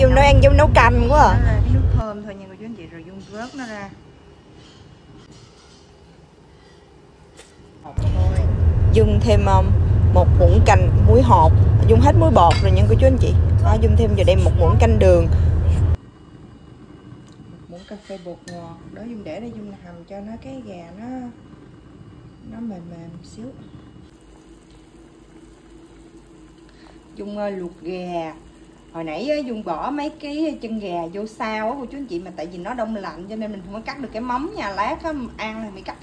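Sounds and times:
loud low rumble: 0.0 - 2.0, 8.0 - 16.0
woman speaking: 0.0 - 4.0, 7.9 - 15.9, 17.7 - 21.4, 22.4 - 23.7, 27.2 - 36.0
broth boiling in a pot: 0.0 - 36.0.

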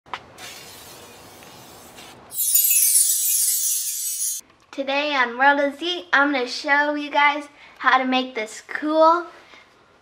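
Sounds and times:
spray paint can hissing: 0.4 - 4.4
glass shattering effect: 2.3 - 4.4.

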